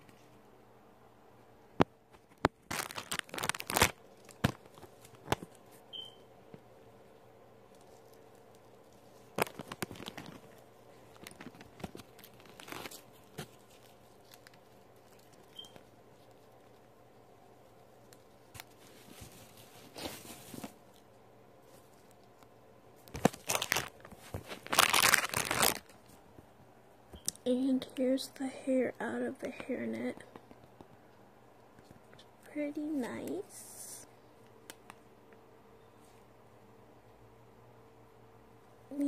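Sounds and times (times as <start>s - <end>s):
packaging rustling and crinkling: 2.2s - 5.8s, 7.7s - 16.9s, 17.9s - 22.4s, 23.0s - 26.2s.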